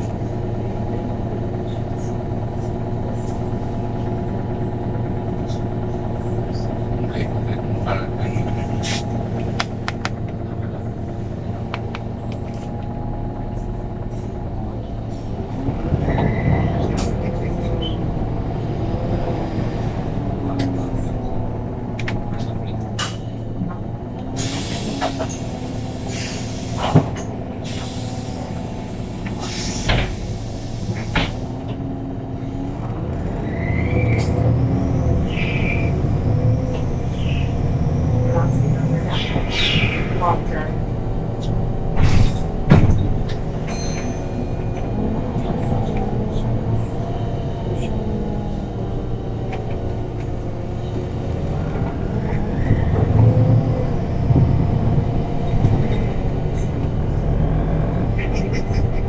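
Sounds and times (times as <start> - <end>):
bus engine droning: 0.0 - 59.0.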